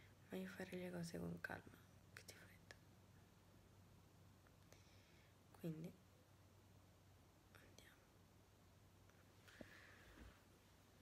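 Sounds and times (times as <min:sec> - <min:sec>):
faint hiss: 0:00.0 - 0:11.0
low steady hum: 0:00.0 - 0:11.0.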